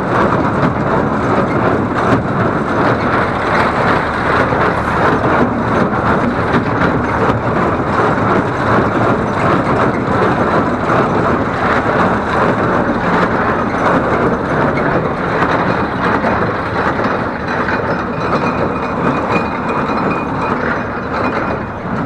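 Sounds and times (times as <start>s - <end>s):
baler and tractor running: 0.0s - 22.0s.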